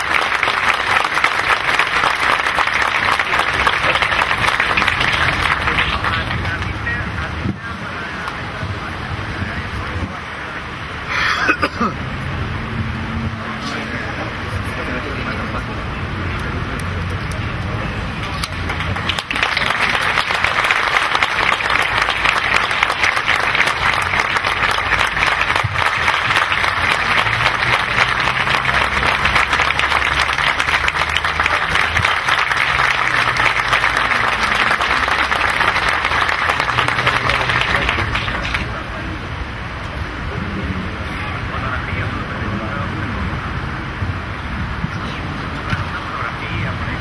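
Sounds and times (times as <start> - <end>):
audience applauding: 0.0 - 7.0, 18.2 - 38.8.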